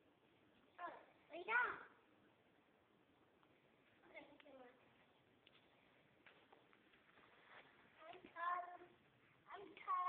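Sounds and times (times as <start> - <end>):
child's high-pitched voice: 0.8 - 2.0, 8.0 - 10.0.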